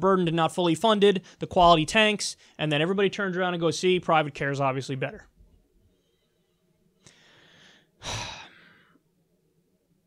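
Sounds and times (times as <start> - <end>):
man sighing heavily: 7.1 - 9.0.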